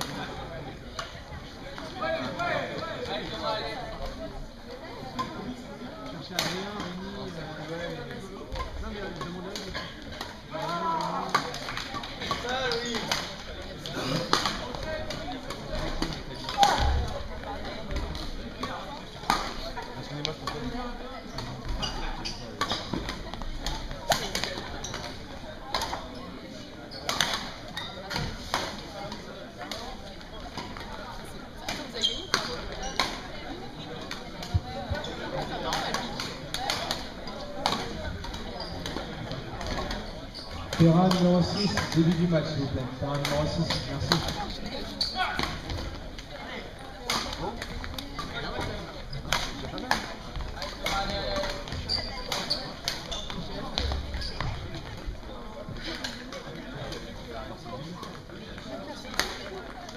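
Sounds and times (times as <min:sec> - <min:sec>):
indistinct background chatter: 0:00.0 - 0:59.9.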